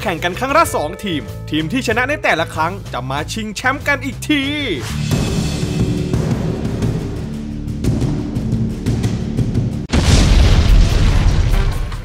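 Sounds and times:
background music: 0.0s - 10.0s
explosion boom: 9.8s - 12.0s.

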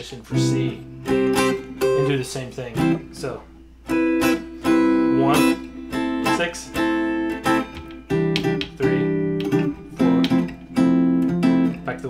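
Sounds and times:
electric guitar chords: 0.3s - 12.0s.

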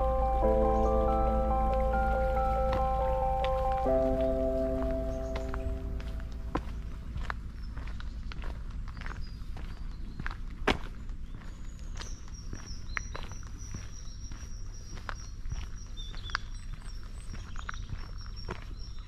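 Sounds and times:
faint high steady note: 0.0s - 7.0s
footsteps on gravel: 0.0s - 19.0s.

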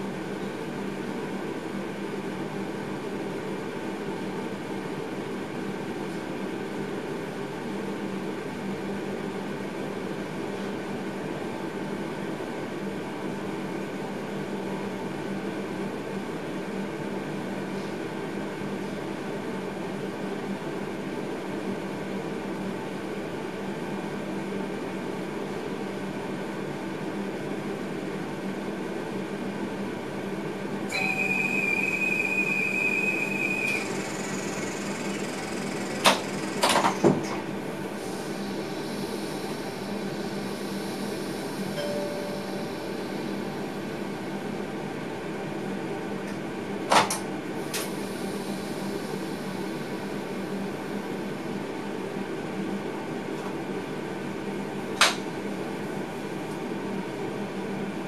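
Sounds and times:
electrical and fan hum: 0.0s - 58.0s
steady high tone: 30.9s - 36.6s, 41.7s - 43.9s.

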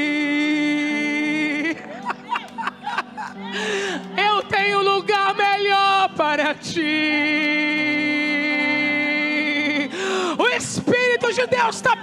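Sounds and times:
woman singing a long vowel: 0.0s - 1.8s, 3.5s - 12.0s.

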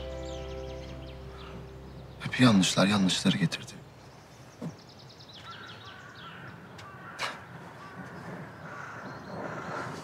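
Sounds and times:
birds calling: 0.0s - 10.0s.

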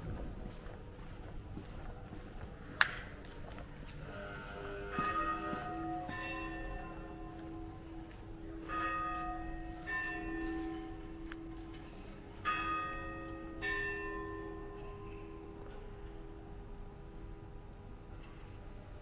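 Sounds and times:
church bells ringing: 3.4s - 17.6s.

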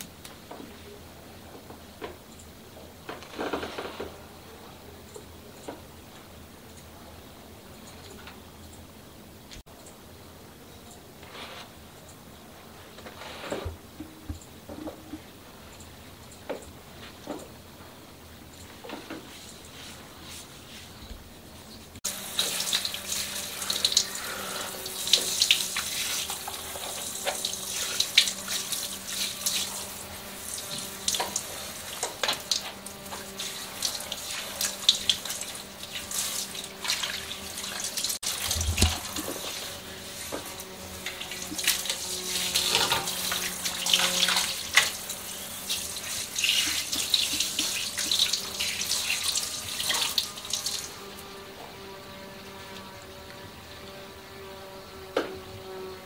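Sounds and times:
water spraying and splashing in sink: 22.0s - 51.3s.

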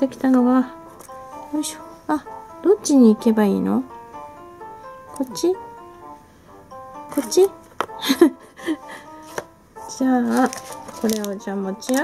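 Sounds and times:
soft background music: 0.0s - 12.0s
woman laughing: 8.0s - 9.1s.

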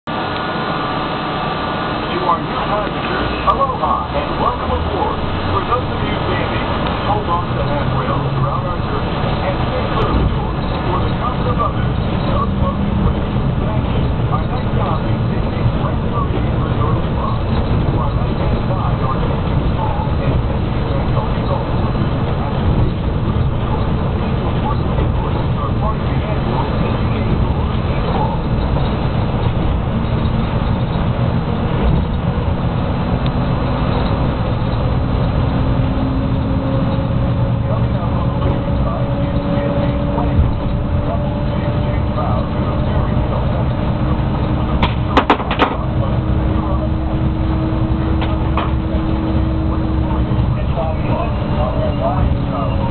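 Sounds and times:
monorail rumble and motor hum: 0.1s - 52.9s
muffled voices talking: 1.9s - 52.9s.

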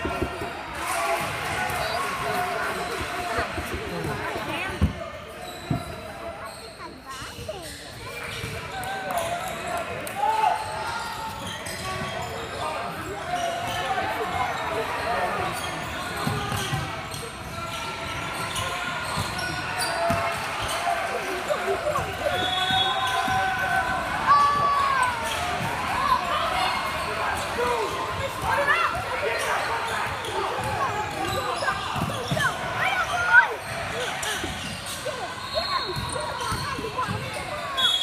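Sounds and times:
sneakers squeaking: 0.0s - 9.8s, 10.4s - 38.0s
voices echoing in gym: 0.0s - 38.0s.

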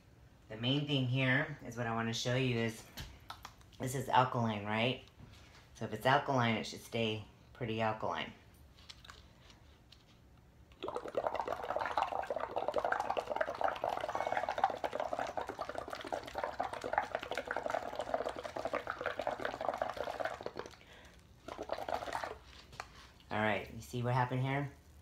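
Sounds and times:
bubbling through a straw in water: 10.7s - 22.8s.

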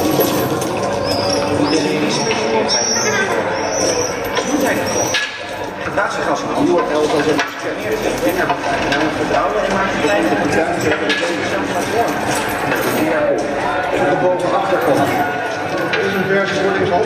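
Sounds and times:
indistinct voices: 0.0s - 17.0s
knocks and clatter: 4.4s - 13.6s.

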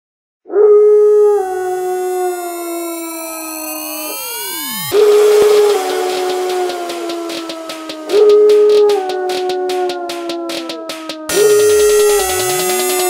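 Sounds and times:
synth sweeps: 4.0s - 13.0s
rhythmic pulse: 4.6s - 13.0s
noisy hit: 5.0s - 13.0s.

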